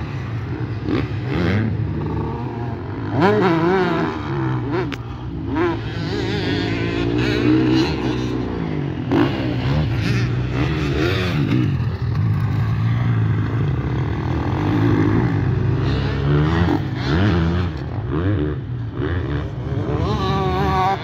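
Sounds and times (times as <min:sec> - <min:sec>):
motocross bike engines revving: 0:00.0 - 0:21.0.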